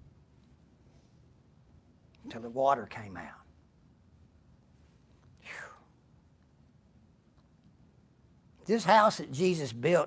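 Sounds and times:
man's short breath: 0:05.4 - 0:05.9.

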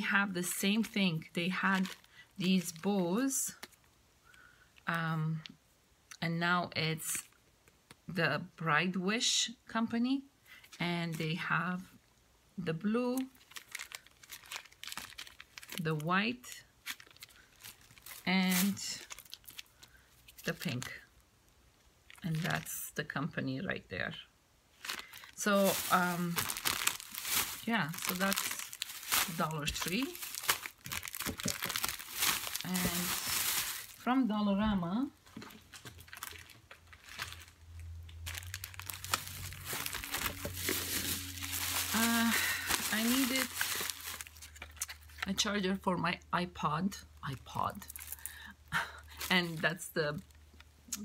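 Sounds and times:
plastic packaging crinkling: 0:00.0 - 0:03.9, 0:13.2 - 0:21.1, 0:22.0 - 0:22.8, 0:24.7 - 0:34.1, 0:35.2 - 0:45.3, 0:47.7 - 0:50.7
low steady hum: 0:00.0 - 0:51.0.

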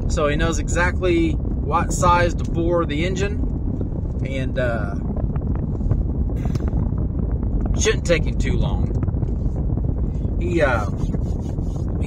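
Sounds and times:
road and wind noise in car: 0:00.0 - 0:12.0.

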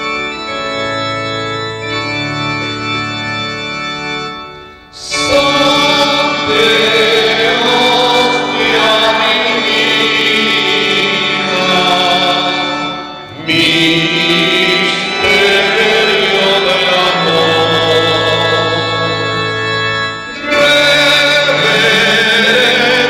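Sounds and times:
voices singing a slow hymn: 0:05.0 - 0:23.0.

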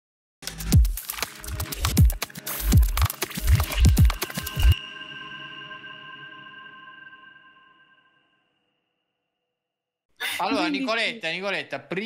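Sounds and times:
electronic high tones ringing: 0:04.8 - 0:08.5.

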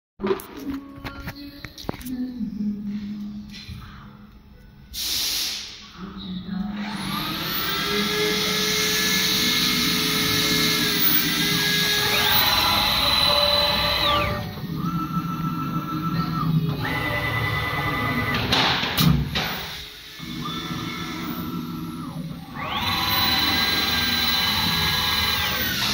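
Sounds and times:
short hiss: 0:05.0 - 0:05.8
router motors whining: 0:06.7 - 0:18.6, 0:19.3 - 0:25.9.

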